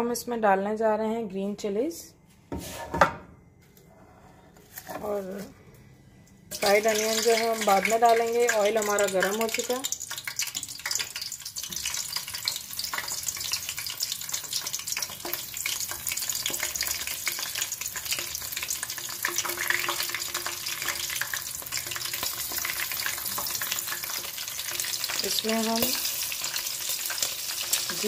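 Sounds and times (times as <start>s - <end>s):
chillies sizzling in hot oil: 6.5s - 28.0s.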